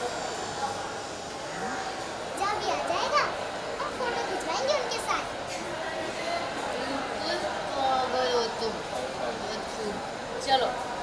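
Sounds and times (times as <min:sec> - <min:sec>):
children calling and chattering: 0:00.0 - 0:10.8
background chatter: 0:00.0 - 0:11.0.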